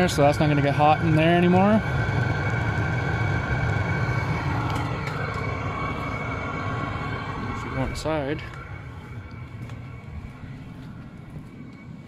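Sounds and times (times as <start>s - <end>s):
faint steady whine: 0.0s - 12.0s
heater low rumble: 0.0s - 12.0s.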